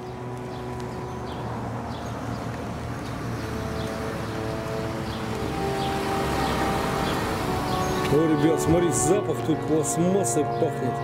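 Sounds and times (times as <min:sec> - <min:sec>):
faint sustained musical tones: 0:00.0 - 0:11.0
outdoor background noise: 0:00.0 - 0:11.0.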